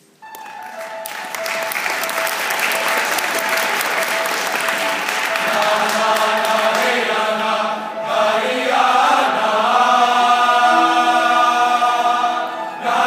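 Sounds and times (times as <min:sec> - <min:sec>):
choir singing sustained chords: 0:02.0 - 0:13.0.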